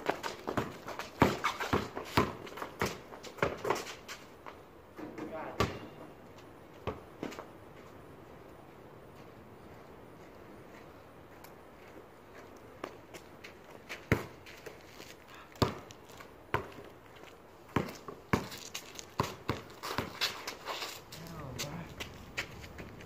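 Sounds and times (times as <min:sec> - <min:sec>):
basketball bouncing on concrete: 0:00.0 - 0:03.9, 0:05.5 - 0:05.9, 0:14.1 - 0:14.4, 0:15.6 - 0:15.9, 0:16.5 - 0:16.9, 0:17.7 - 0:20.4
sneaker footsteps and scuffs: 0:09.2 - 0:23.0.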